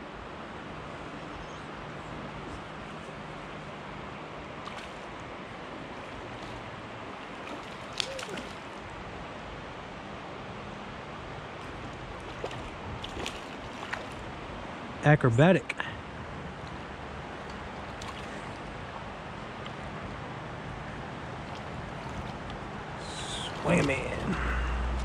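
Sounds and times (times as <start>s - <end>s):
stream water over rocks: 0.1s - 15.0s, 16.0s - 25.0s
fish splash: 4.6s - 5.2s, 7.2s - 8.8s, 11.6s - 14.3s, 17.9s - 18.6s, 21.4s - 25.0s.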